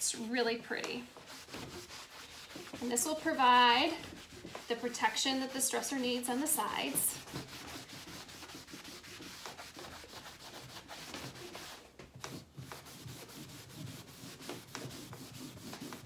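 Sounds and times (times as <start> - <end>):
cloth rag scrubbing wood: 0.0 - 16.0.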